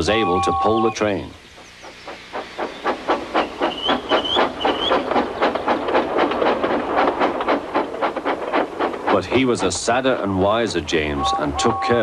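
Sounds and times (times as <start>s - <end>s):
steam locomotive chuffing: 0.0s - 12.0s.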